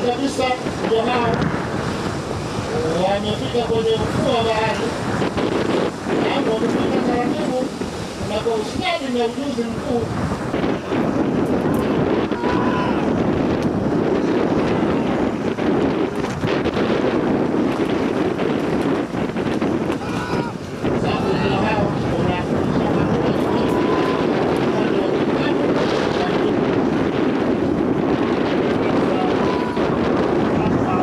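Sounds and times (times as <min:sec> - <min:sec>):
wind buffeting microphone: 0:00.0 - 0:31.0
distant voices: 0:19.8 - 0:31.0.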